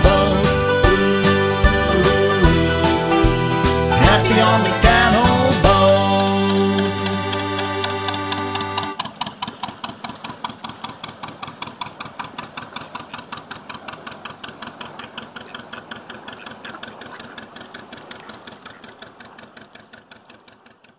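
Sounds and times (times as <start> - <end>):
diesel engine chugging: 0.0 - 20.9.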